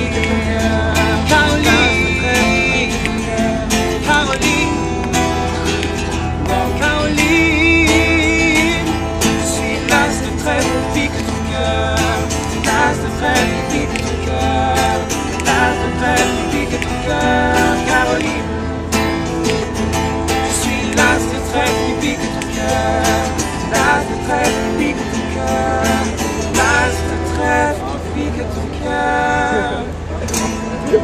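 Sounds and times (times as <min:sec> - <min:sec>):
acoustic guitars strummed: 0:00.0 - 0:31.0
men singing: 0:00.0 - 0:31.0.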